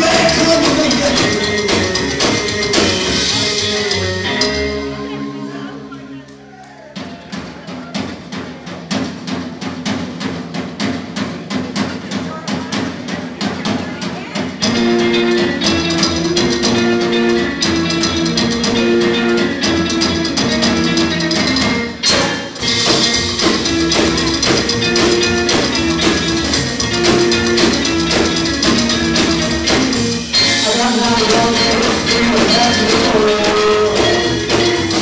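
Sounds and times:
rockabilly band playing: 0.0 - 35.0.

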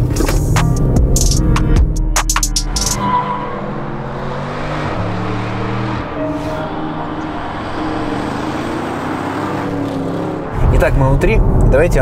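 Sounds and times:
car engine driving: 0.0 - 12.0
road noise: 0.0 - 12.0.

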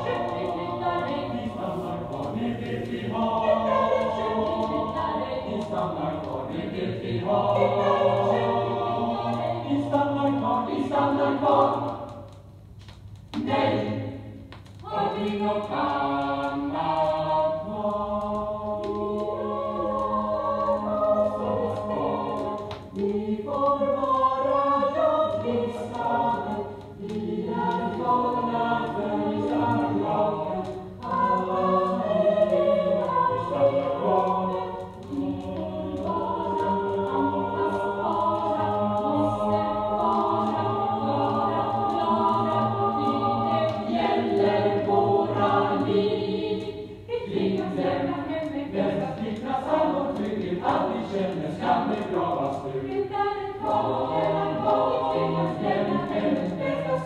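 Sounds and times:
choir singing: 0.0 - 12.4, 13.4 - 57.0.

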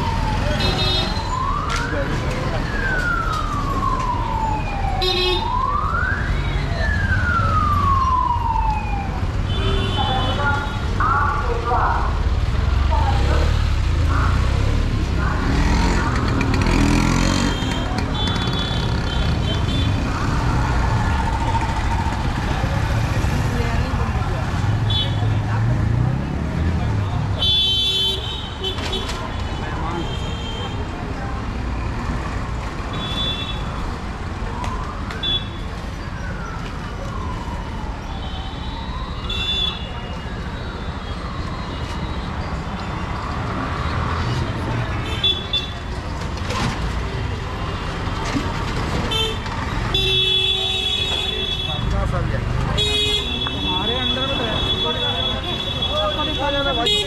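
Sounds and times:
distant siren wail: 0.0 - 9.5, 18.4 - 24.0, 34.0 - 43.5
scooter traffic hum: 0.0 - 57.0
crowd chatter: 28.7 - 32.3, 42.6 - 57.0.

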